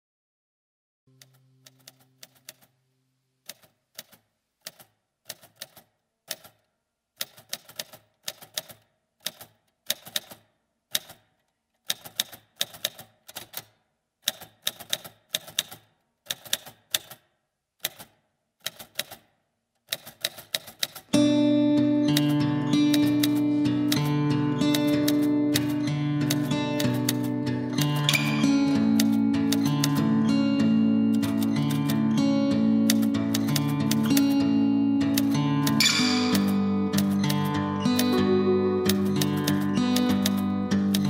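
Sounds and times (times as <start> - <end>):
sharp mechanical clicks: 3.4 - 21.1
guitar-led band music: 21.2 - 41.0.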